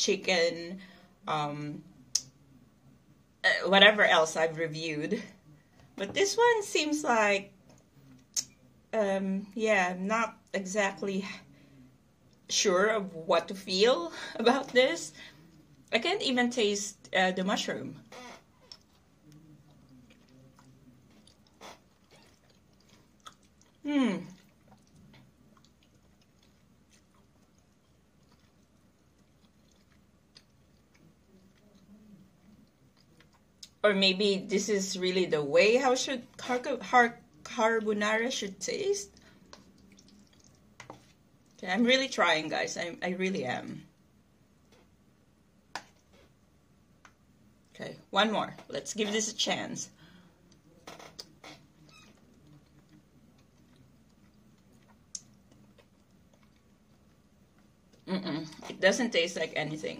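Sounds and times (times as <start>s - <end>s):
low room hum: 0.0s - 59.9s
chewing pasta: 18.1s - 33.8s, 39.0s - 41.6s, 50.0s - 58.7s
wet mouth clicks: 39.5s - 41.0s, 53.7s - 56.7s.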